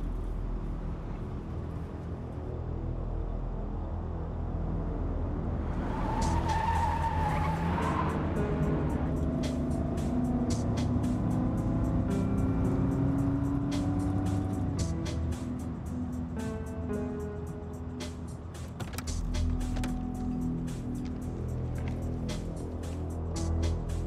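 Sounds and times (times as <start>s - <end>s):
tire squeal: 5.7s - 10.2s
music with ticking beat: 8.5s - 24.0s.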